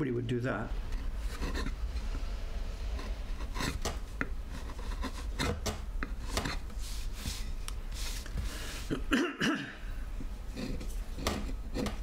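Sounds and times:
steady low hum: 0.0s - 12.0s
blade cutting wood: 2.9s - 6.7s.

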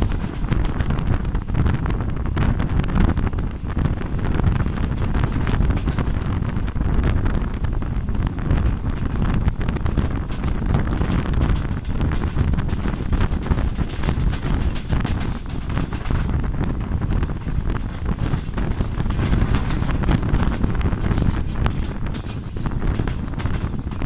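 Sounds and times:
train rumbling on track: 0.0s - 24.0s
wind buffeting microphone: 0.0s - 24.0s.

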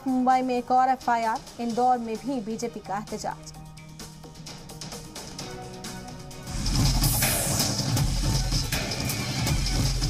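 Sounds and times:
news theme music: 0.0s - 10.0s.

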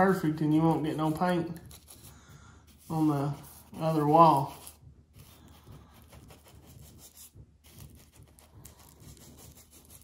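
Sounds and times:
paintbrush scratching a ceiling: 0.0s - 10.0s.

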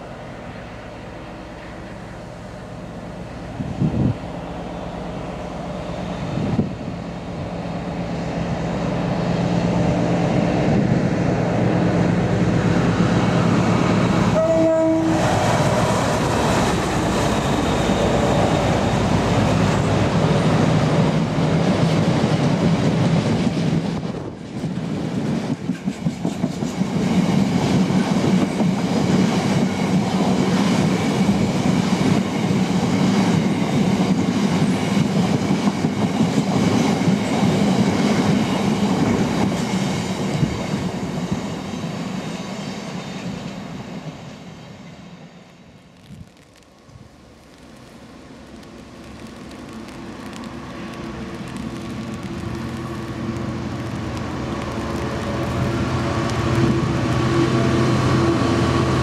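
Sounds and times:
diesel locomotive engine: 0.0s - 59.0s
two-tone train horn: 14.3s - 15.6s, 56.0s - 59.0s
train wheels clacking over rail joints: 21.8s - 31.5s.

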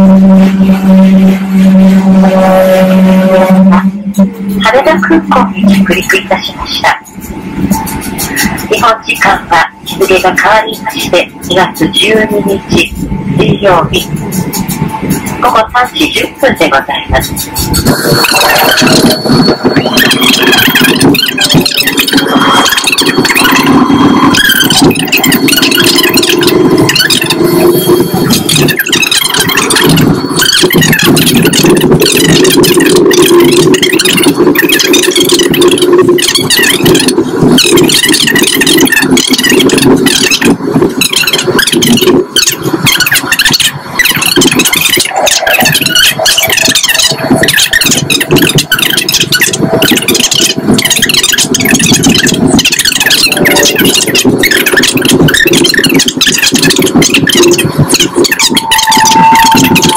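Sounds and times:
jet airliner cabin noise: 0.0s - 59.9s.

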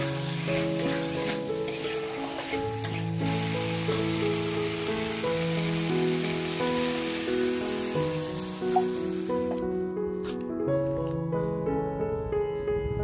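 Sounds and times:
metal spatula stirring in wok: 0.0s - 3.6s
food sizzling in hot oil: 0.0s - 9.6s
background music held notes: 0.0s - 13.0s.

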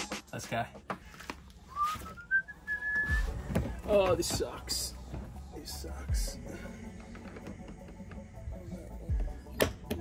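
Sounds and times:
person whistling: 1.7s - 3.5s
handling bumps: 3.0s - 5.5s.

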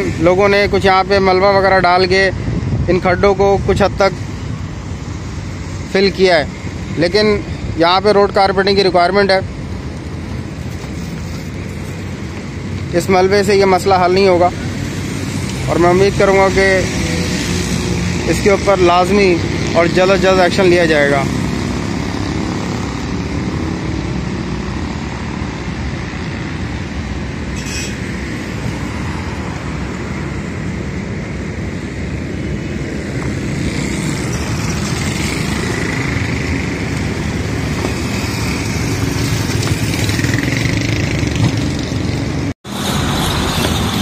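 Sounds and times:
passing road traffic: 0.0s - 44.0s.

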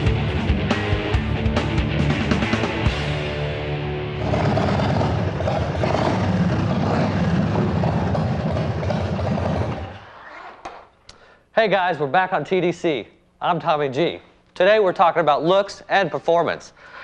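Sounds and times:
rock theme music: 0.0s - 8.8s
motorcycle engine revving: 3.3s - 10.1s.

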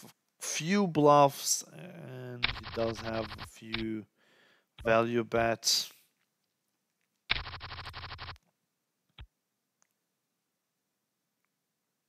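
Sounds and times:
rapid rattling ticks: 2.4s - 3.5s, 7.3s - 8.4s.

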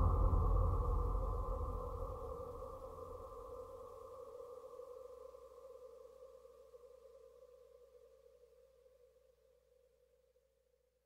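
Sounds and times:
sustained synth tone: 0.0s - 3.4s.

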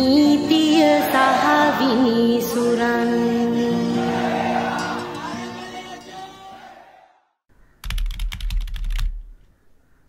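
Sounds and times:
computer keyboard keystrokes: 7.8s - 9.4s.

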